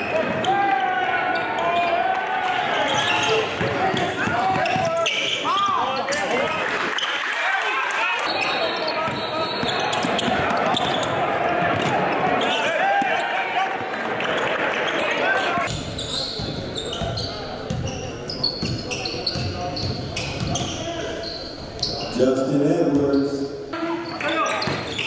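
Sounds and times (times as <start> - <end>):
crowd and player voices: 0.0 - 25.0
sneaker squeaks: 2.7 - 6.4, 8.2 - 11.2, 14.2 - 22.2, 22.9 - 25.0.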